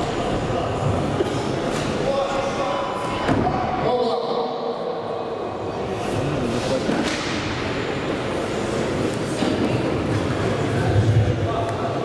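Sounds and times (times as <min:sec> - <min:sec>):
crowd voices and shouting: 0:00.0 - 0:12.0.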